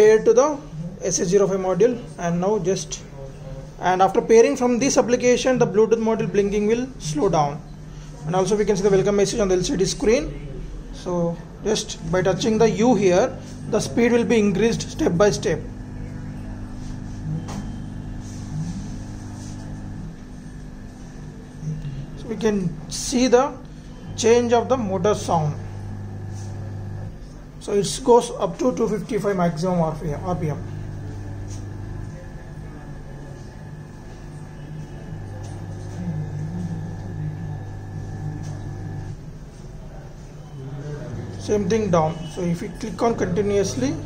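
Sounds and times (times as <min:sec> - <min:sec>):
faint high motor whine: 0:00.0 - 0:44.0
electric motor humming: 0:15.6 - 0:21.2, 0:24.0 - 0:27.2, 0:30.1 - 0:39.2.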